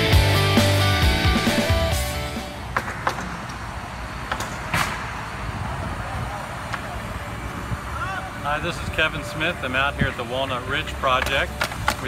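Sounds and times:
sharp knocks: 2.7 - 3.6
man talking: 8.0 - 12.0.

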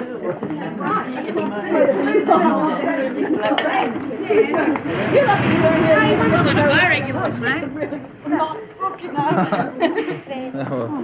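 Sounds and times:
group of voices chattering: 1.5 - 11.0.

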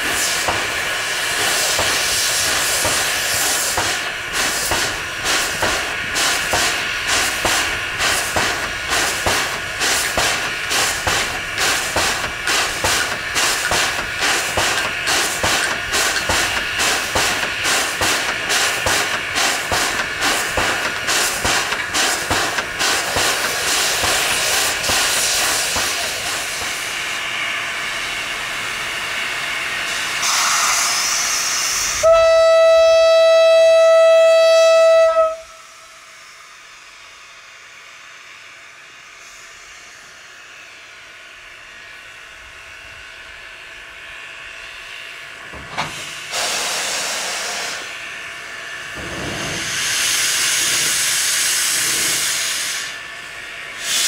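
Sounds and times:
steam locomotive hissing: 0.0 - 54.0
loud steam whistle blast: 30.2 - 36.3, 46.3 - 48.0.

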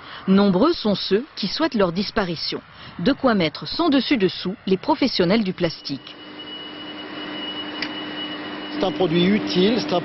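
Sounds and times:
factory machinery humming: 5.4 - 10.0
thin high whine: 5.4 - 10.0.

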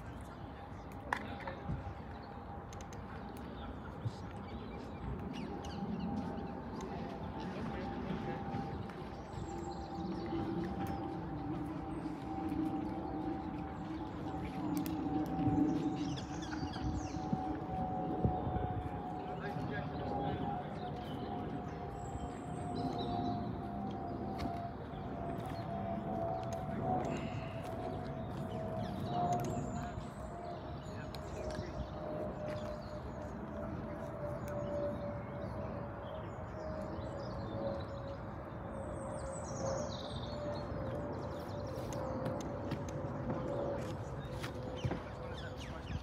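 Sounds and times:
birds chirping: 0.0 - 46.0.

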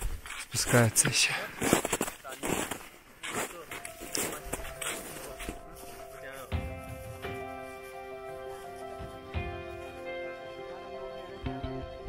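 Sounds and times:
background music with held notes: 3.5 - 12.0.

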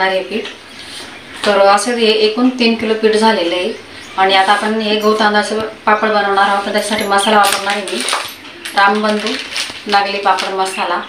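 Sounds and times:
woman talking: 0.0 - 0.6, 1.4 - 11.0.

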